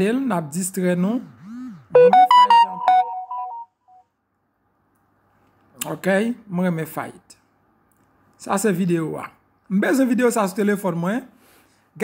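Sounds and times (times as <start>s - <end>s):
smartphone notification jingle: 2.0s - 3.8s.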